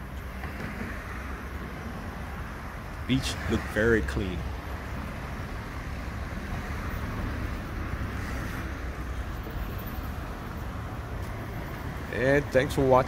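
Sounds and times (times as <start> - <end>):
passing road traffic: 0.0 - 13.0.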